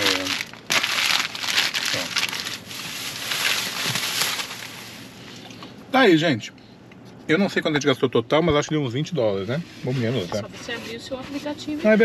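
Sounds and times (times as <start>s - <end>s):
paper wrapper crinkling: 0.0s - 5.1s.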